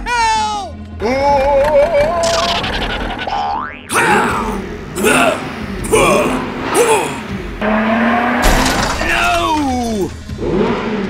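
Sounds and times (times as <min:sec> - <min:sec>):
comic falling tones effect: 0:01.4 - 0:07.8
cartoon boing glide: 0:01.9 - 0:04.1.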